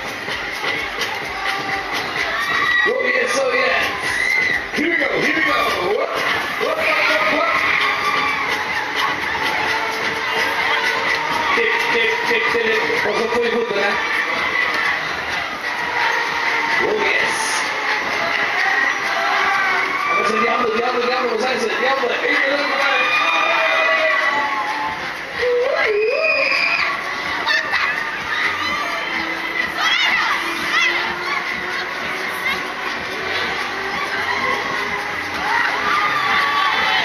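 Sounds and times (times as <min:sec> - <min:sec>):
riders screaming: 0:01.3 - 0:13.2, 0:22.3 - 0:37.0.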